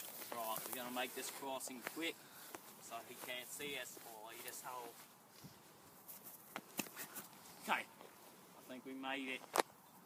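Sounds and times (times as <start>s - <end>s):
faint footsteps: 0.0s - 9.9s.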